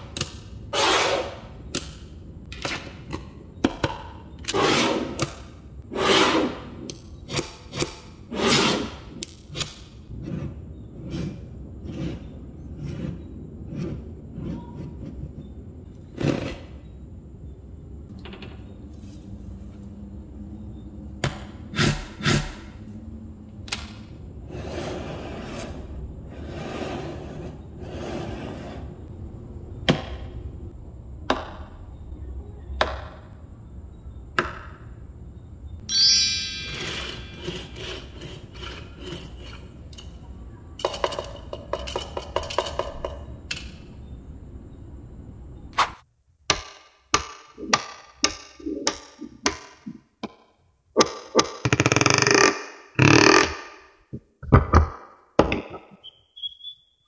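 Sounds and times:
chirping sweep: 35.8s - 38.0s.

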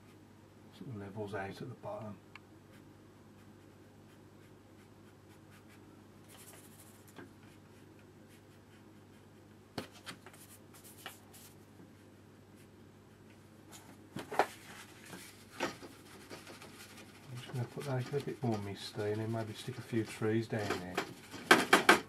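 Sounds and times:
brush strokes on paper: 3.4s - 9.4s, 10.3s - 12.7s
paper tissue rustling: 9.9s - 11.6s, 13.7s - 21.4s.

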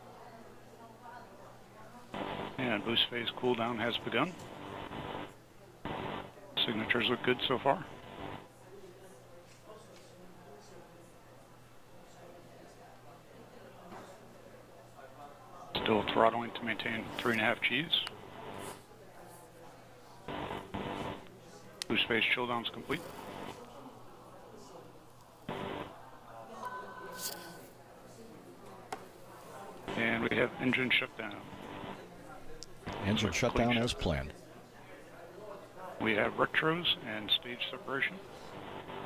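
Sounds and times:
faint steady radio hiss: 0.0s - 39.0s
voice over radio: 2.2s - 5.1s, 6.6s - 8.2s, 15.8s - 18.8s, 29.9s - 31.8s, 32.9s - 34.3s, 36.0s - 39.0s.

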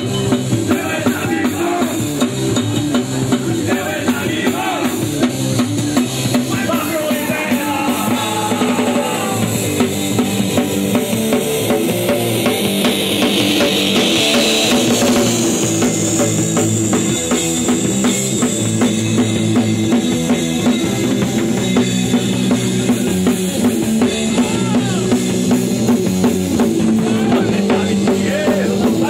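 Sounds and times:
fast drum kit beat: 0.0s - 29.0s
punk rock band playing live: 0.0s - 29.0s.

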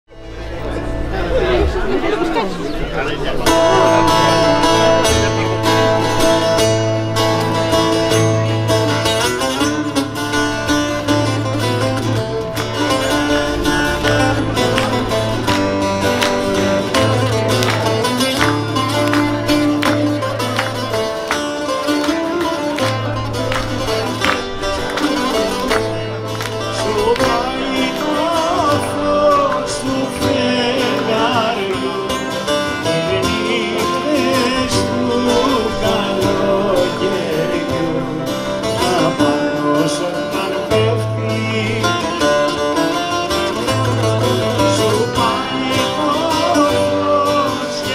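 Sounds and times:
acoustic guitar playing: 0.1s - 47.9s
audience chatter: 0.1s - 47.9s
low bass notes: 0.1s - 47.9s
man singing: 25.1s - 47.9s.

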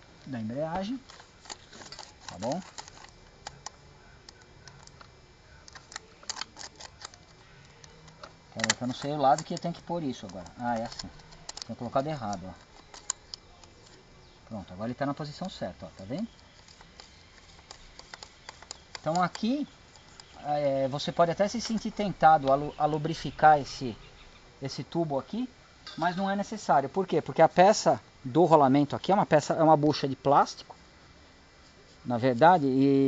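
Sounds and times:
plastic and metal parts clicking: 0.7s - 23.8s.

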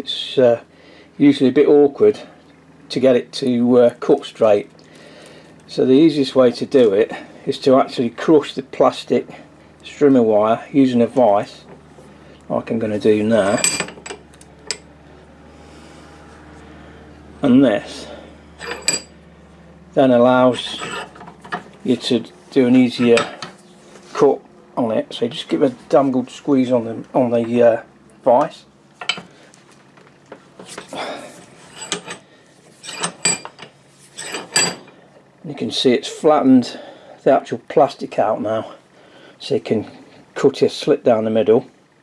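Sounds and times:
steady low hum: 0.0s - 42.0s
bench vise metallic clinks: 13.4s - 14.9s, 18.6s - 19.2s, 31.7s - 32.2s, 32.8s - 35.0s.

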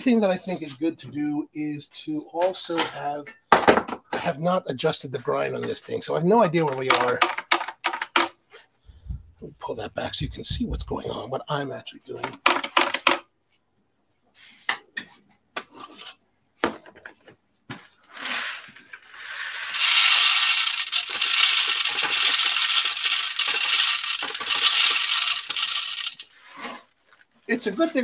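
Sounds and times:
handling clicks and knocks: 6.6s - 8.4s
coffee beans pouring into grinder: 18.2s - 26.8s.

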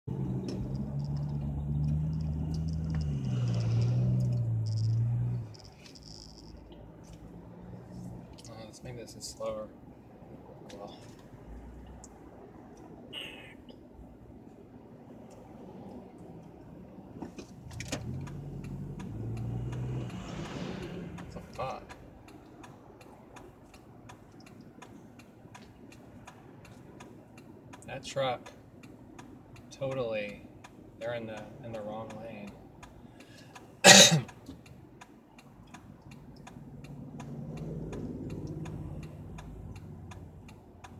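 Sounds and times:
car engine and road drone: 0.0s - 40.9s
turn signal ticking: 0.1s - 40.9s.

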